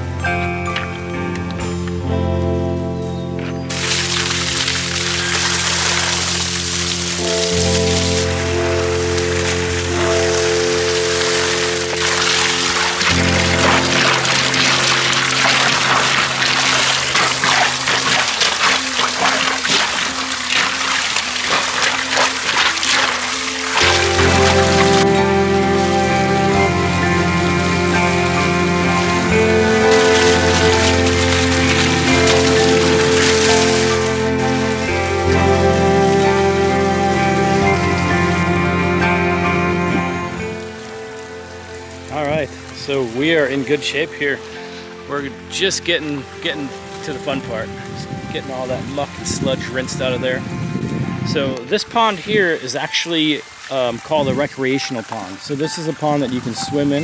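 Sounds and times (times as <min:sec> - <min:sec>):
instrumental music: 0:00.0 - 0:57.0
hose water splashing on rocks: 0:03.7 - 0:39.5, 0:51.4 - 0:57.0.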